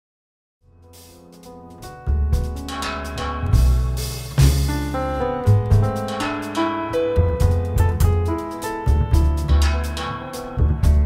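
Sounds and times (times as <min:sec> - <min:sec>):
jazz trio music: 0:00.8 - 0:11.0.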